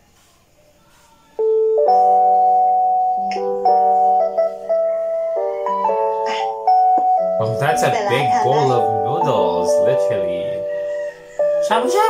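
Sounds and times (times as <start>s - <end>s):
gentle keyboard background music: 0.0s - 12.0s.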